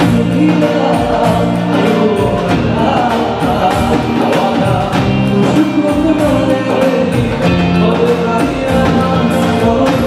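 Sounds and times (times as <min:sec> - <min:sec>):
live band music: 0:00.0 - 0:10.0.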